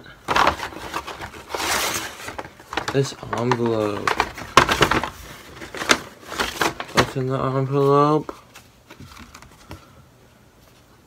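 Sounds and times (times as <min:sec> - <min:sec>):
paper bag rustling: 0:00.2 - 0:09.7.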